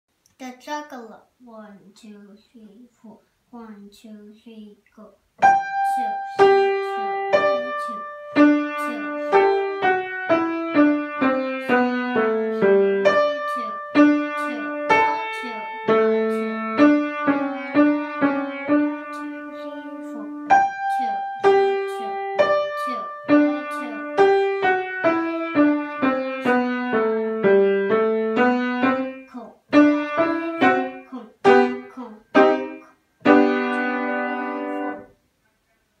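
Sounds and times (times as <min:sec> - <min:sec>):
grand piano playing: 0:05.4 - 0:31.8, 0:32.4 - 0:35.0.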